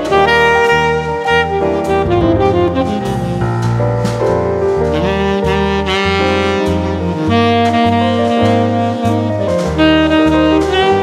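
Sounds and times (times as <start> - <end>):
saxophone melody: 0.0 - 11.0
bass line: 1.6 - 6.5.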